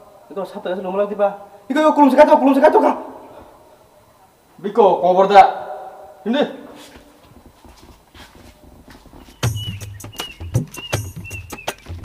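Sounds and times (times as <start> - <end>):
background music with low beat: 7.4 - 12.0.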